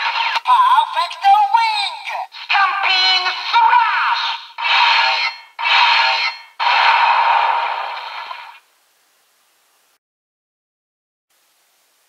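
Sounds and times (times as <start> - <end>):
synthesized toy voice: 0.4 - 4.4
noisy effect bursts: 2.4 - 8.7.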